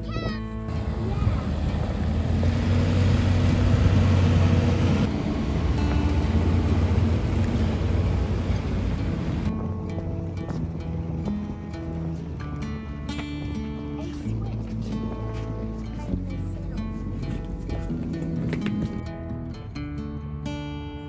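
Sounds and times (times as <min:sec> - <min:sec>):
tyres on gravel: 0:00.0 - 0:19.7
truck engine rumble: 0:00.0 - 0:20.5
background music: 0:00.0 - 0:21.0.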